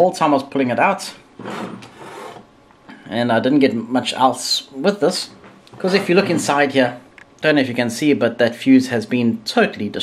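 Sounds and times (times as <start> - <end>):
metal scraping on wooden bench: 1.4 - 2.5, 5.2 - 6.6.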